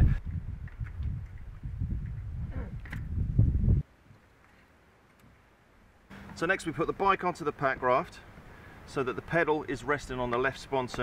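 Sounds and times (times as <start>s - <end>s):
wind rumble on microphone: 0.0s - 3.9s.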